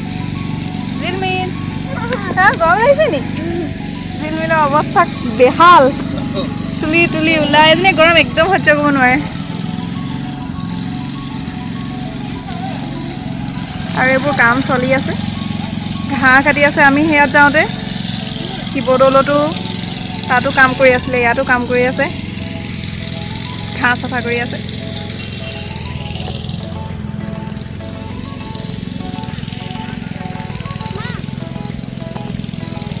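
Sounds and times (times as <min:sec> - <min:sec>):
lawn mower running: 0:00.0 - 0:33.0
child's high-pitched voice: 0:30.9 - 0:31.3.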